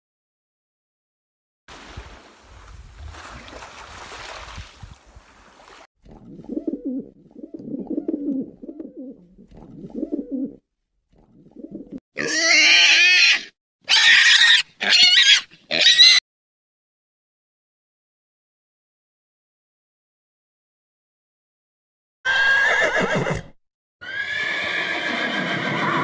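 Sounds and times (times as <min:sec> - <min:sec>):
pigeons cooing: 0:06.3 - 0:10.6, 0:11.2 - 0:12.0
high-pitched animal calls: 0:12.2 - 0:16.2.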